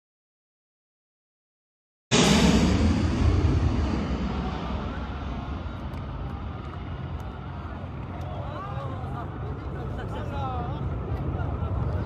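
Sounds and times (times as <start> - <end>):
jet engines deep rumble: 2.1 - 12.0.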